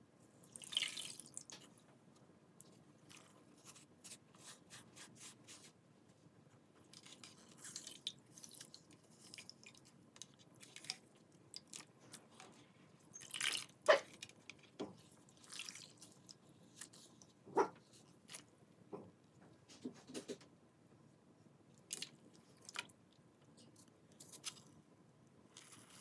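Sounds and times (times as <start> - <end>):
squeezing soaked floral foam: 6.8 - 12.5.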